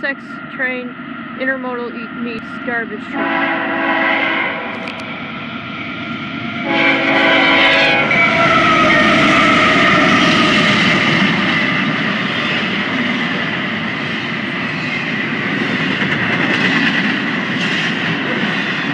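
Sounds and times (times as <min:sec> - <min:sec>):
diesel locomotives passing: 0:00.0 - 0:18.9
freight cars rumbling on rails: 0:00.0 - 0:18.9
locomotive horn chord: 0:03.1 - 0:04.8, 0:06.6 - 0:10.3.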